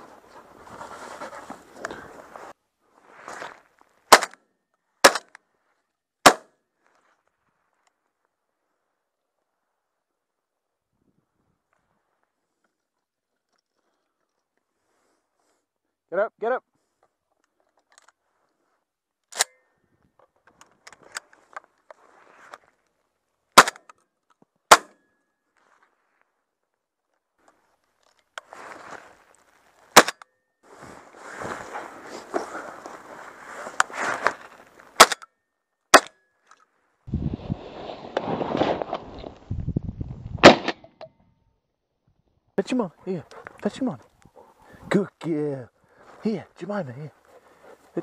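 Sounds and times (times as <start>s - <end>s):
shotgun shots: 6.2s - 6.5s, 40.4s - 40.8s
gun handling clicks and rustling: 17.0s - 18.6s, 19.2s - 25.5s, 27.1s - 30.4s, 33.7s - 35.3s, 36.0s - 36.7s.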